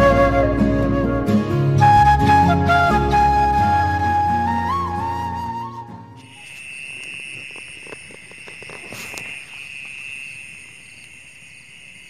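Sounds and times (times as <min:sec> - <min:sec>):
crickets chirping: 0:05.9 - 0:12.0.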